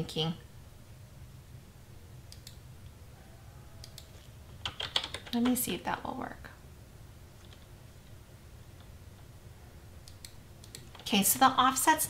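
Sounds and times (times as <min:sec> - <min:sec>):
low steady hum: 0:00.0 - 0:12.0
faint mouse clicks: 0:02.3 - 0:02.6, 0:03.8 - 0:04.3, 0:10.0 - 0:10.9.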